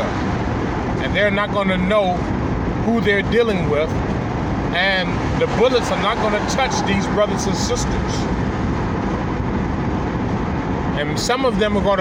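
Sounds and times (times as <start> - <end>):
car road noise inside cabin: 0.0 - 12.0.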